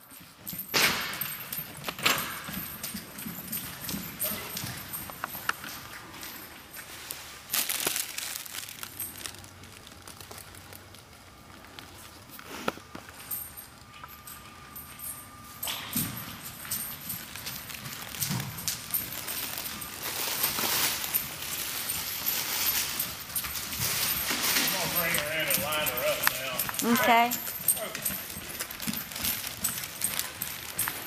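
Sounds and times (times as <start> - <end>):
horse hoofbeats on dirt: 0.0 - 6.8, 14.2 - 31.0.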